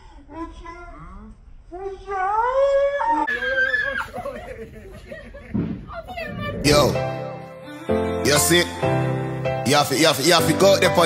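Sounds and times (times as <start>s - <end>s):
person screaming high-pitched: 2.8s - 4.0s.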